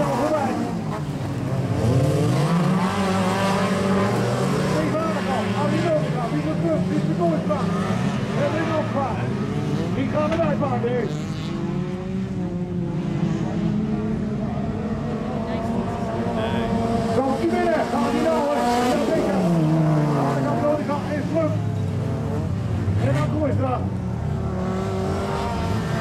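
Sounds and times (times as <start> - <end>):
race car engines revving: 0.0 - 26.0.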